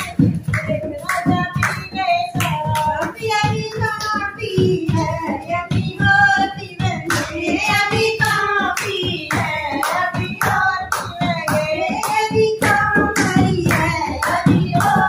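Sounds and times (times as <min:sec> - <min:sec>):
barrel drum beating: 0:00.0 - 0:15.0
hand clapping: 0:00.0 - 0:15.0
women singing: 0:00.0 - 0:15.0.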